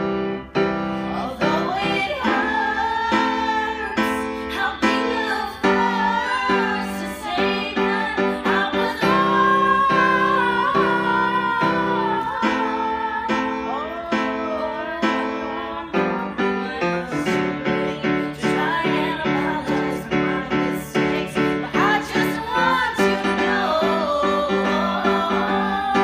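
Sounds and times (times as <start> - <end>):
piano playing chords: 0.0 - 26.0
woman singing slow song: 1.1 - 26.0.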